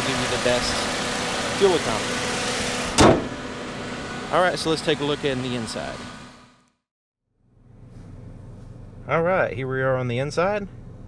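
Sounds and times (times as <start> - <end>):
steady low hum: 7.4 - 11.0.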